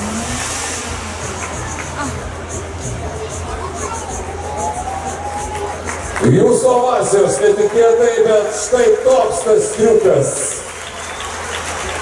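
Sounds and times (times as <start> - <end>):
high hiss: 0.0 - 3.0
car engine running: 0.0 - 4.6.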